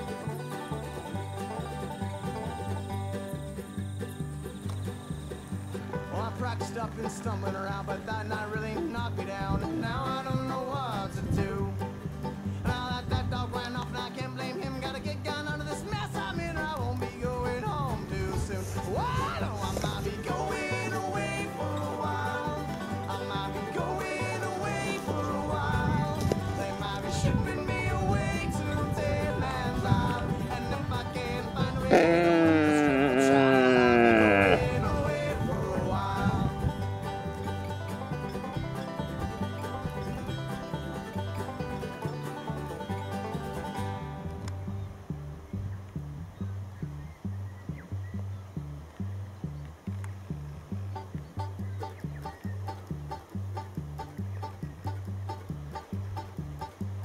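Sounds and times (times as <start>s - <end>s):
country music with steady beat: 0.0s - 57.0s
stag roaring: 31.8s - 35.2s.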